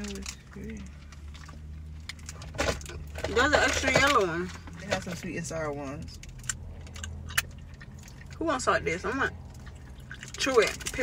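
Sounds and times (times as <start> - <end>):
low hum inside a car: 0.0 - 11.0.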